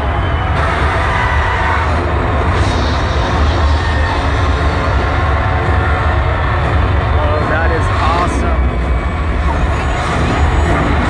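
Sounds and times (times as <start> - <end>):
crowd shouting: 0.0 - 11.0
loud concert through speakers: 0.0 - 11.0.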